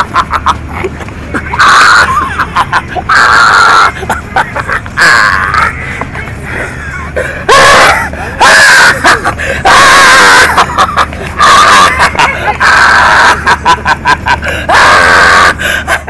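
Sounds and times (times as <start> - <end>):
fighters screaming and yelling: 7.4 - 13.4, 14.5 - 15.7.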